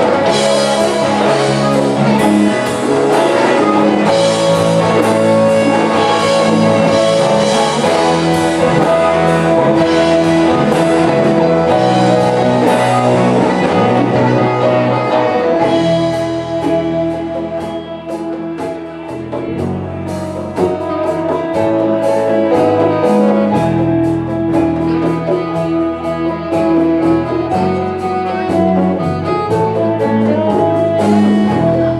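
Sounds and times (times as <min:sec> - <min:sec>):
bass guitar: 0:00.0 - 0:31.9
drum kit: 0:00.0 - 0:31.9
electric guitars: 0:00.0 - 0:31.9
saxophone: 0:00.0 - 0:31.9.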